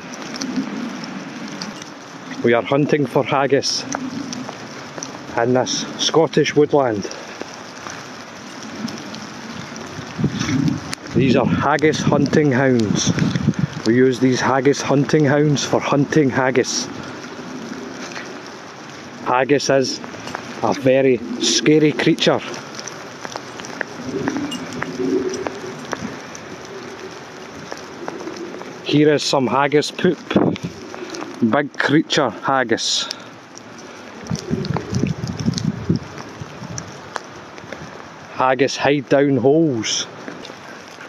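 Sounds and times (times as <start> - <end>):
twigs crackling underfoot: 0.0 - 38.4, 39.6 - 41.0
low wind rumble: 0.0 - 41.0
wind on phone microphone: 9.5 - 14.0, 30.2 - 31.4, 34.2 - 37.0
footsteps on forest floor: 20.0 - 28.9.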